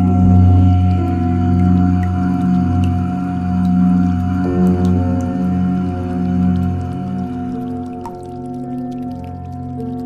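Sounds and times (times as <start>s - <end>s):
ambient meditation music: 0.0s - 10.0s
deep chanted drone: 0.0s - 10.0s.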